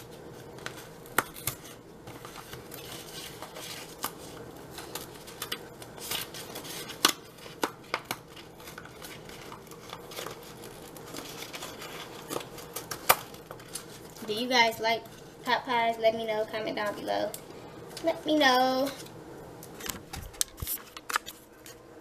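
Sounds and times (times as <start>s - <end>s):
cardboard and plastic packaging handled: 0.0s - 15.3s, 19.7s - 21.8s.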